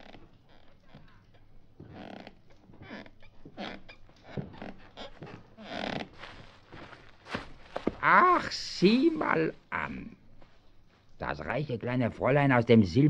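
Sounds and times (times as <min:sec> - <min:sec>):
wooden ladder rustles and creaks: 0:00.0 - 0:11.3.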